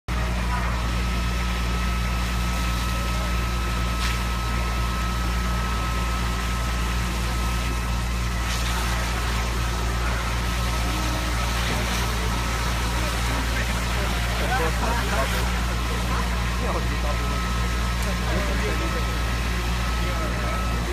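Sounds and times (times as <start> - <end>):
engine idling: 0.1 - 20.9
thin steady whine: 0.1 - 20.9.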